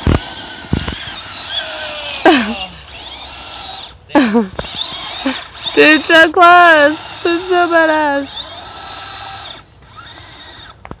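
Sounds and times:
electric motor high-pitched whine: 0.0s - 11.0s.

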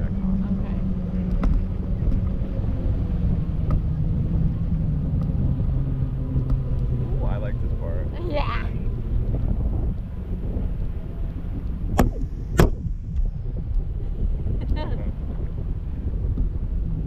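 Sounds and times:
boat engine low drone: 0.0s - 17.0s.

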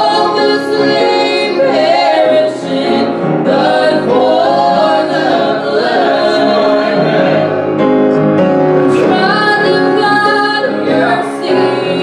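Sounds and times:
piano accompaniment: 0.0s - 12.0s
woman singing a hymn: 9.0s - 12.0s.

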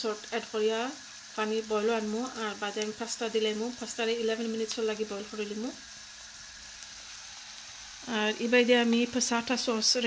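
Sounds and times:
gas stove hissing: 0.0s - 10.0s.

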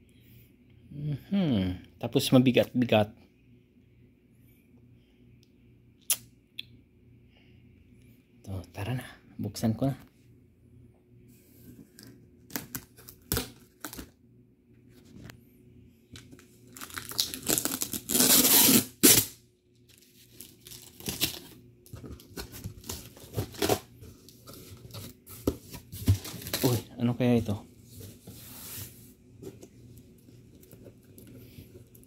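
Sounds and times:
packing tape tearing: 12.5s - 14.1s, 16.7s - 21.6s, 22.3s - 23.9s.

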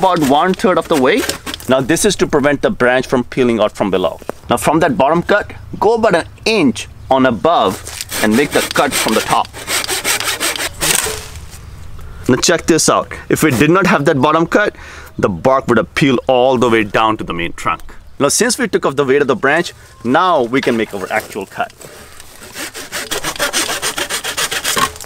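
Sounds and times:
hand saw cutting branch: 0.0s - 1.8s, 7.7s - 11.4s, 20.7s - 25.0s.

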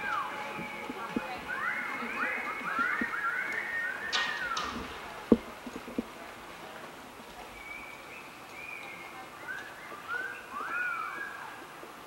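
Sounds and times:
small birds chirping: 0.0s - 6.1s, 7.3s - 12.0s
low background noise: 0.0s - 12.0s.

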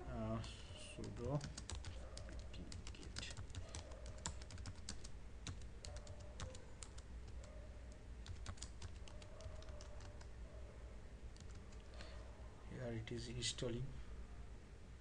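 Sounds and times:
low steady hum: 0.0s - 15.0s
keyboard typing: 0.3s - 10.3s, 11.3s - 11.9s.

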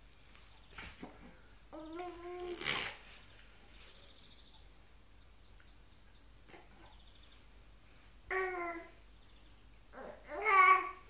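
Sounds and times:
baby cooing: 1.7s - 2.9s, 8.3s - 9.0s, 9.9s - 11.0s
baby blowing air through lips: 2.3s - 3.1s.

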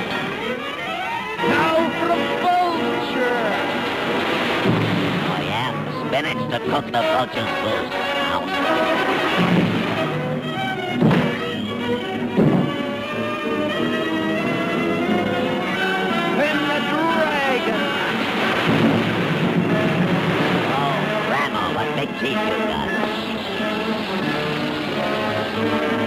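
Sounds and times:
orchestral cartoon music: 0.0s - 26.0s
sliding notes: 0.0s - 26.0s
heavy thuds: 3.6s - 6.2s, 9.0s - 13.1s, 17.9s - 21.8s.

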